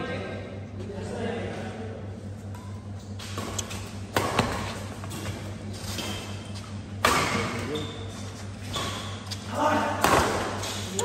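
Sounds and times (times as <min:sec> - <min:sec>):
steady low hum: 0:00.0 - 0:11.0
racket smacking shuttlecock: 0:03.2 - 0:06.3.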